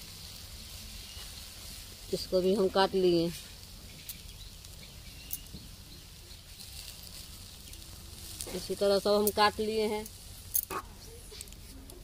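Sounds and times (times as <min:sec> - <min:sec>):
faint sizzling of frying: 0:00.0 - 0:12.0.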